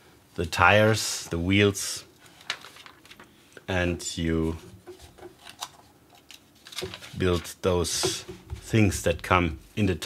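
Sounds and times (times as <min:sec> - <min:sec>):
paper pages turning: 0:02.2 - 0:03.3, 0:04.8 - 0:07.6.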